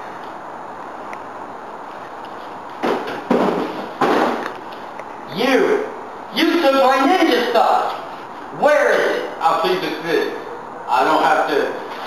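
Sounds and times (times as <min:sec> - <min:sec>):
sudden loud bangs: 0:02.8 - 0:04.5.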